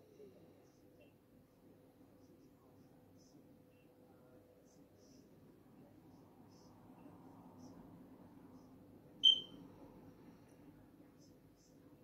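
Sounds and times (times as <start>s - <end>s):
faint low room hum: 0.0s - 12.0s
high-pitched electronic beep: 9.2s - 9.5s.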